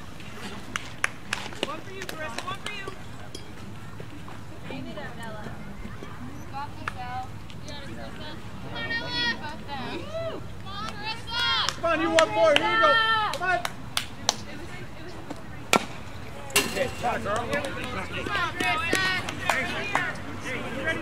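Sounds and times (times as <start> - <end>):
children shouting and cheering: 8.8 - 13.3.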